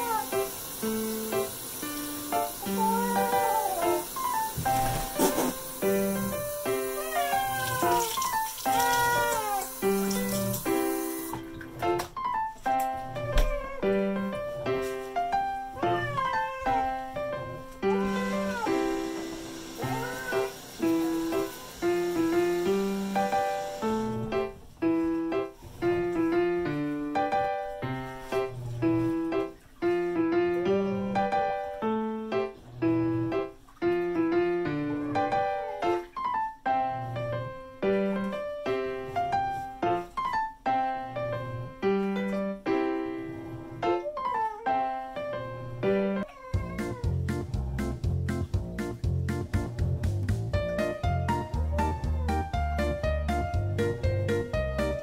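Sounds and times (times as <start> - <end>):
cat meowing: 0.0 - 0.4, 2.6 - 4.0, 6.9 - 9.8, 13.2 - 14.2, 15.7 - 19.1, 19.8 - 20.6, 43.9 - 44.9, 46.2 - 47.3
background piano music: 0.0 - 55.0.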